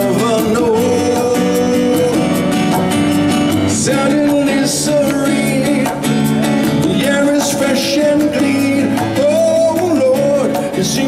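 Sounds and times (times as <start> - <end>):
acoustic guitar: 0.0 - 11.0
conga drums: 0.0 - 11.0
keyboard: 0.0 - 11.0.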